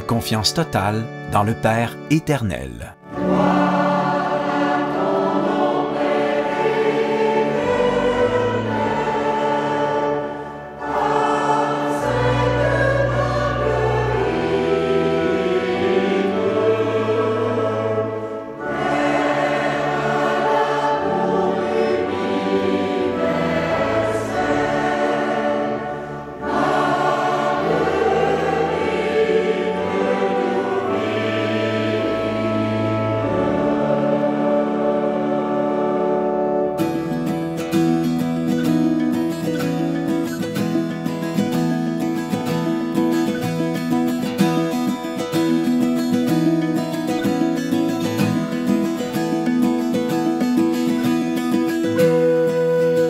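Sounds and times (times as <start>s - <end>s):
choir singing a hymn: 0.0s - 38.6s, 46.6s - 53.0s
pipe organ: 0.0s - 53.0s.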